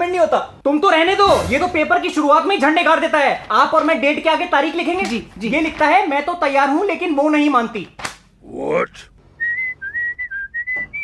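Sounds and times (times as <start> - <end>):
person whistling a tune: 9.4 - 11.0.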